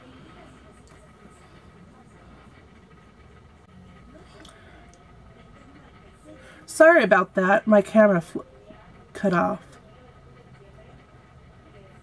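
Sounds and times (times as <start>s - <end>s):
faint indistinct voices: 0.0s - 12.0s
steady low hum: 0.0s - 12.0s.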